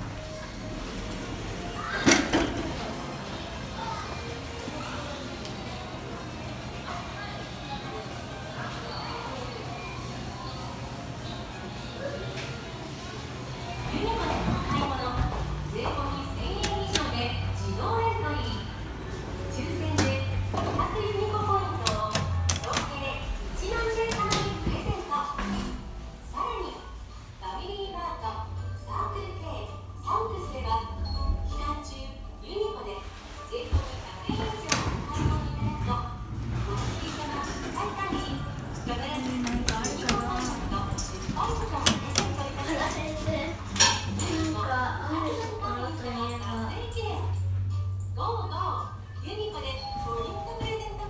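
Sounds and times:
background chatter: 1.4 - 29.9, 32.4 - 51.0
elevator hum: 12.8 - 51.0
background music: 13.2 - 51.0
elevator doors sliding shut: 21.7 - 26.0.

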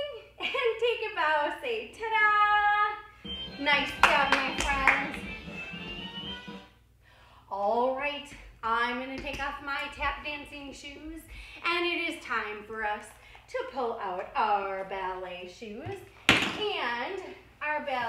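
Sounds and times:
hand claps: 3.8 - 5.4.

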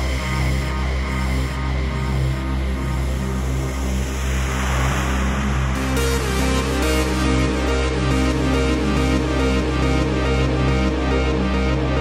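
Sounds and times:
deep sustained bass: 0.0 - 12.0
held synth chords: 0.0 - 12.0
noise swell: 2.6 - 8.5.

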